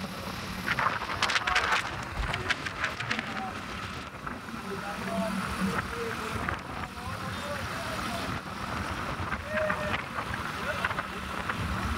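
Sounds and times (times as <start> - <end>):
vehicle road and wind noise: 0.0 - 11.9.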